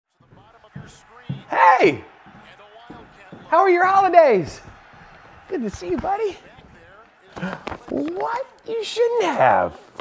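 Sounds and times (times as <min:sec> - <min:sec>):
footsteps on hard floor: 0:00.2 - 0:08.5.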